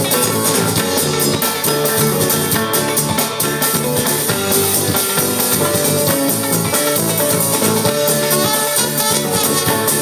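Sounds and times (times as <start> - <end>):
drum kit beat: 0.0 - 10.0
sousaphone bass line: 0.0 - 10.0
strummed banjo: 0.0 - 10.0.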